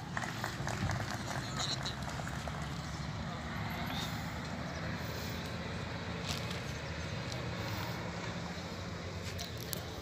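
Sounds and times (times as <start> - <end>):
distant crowd voices: 0.0 - 10.0
outdoor rumble: 0.0 - 10.0.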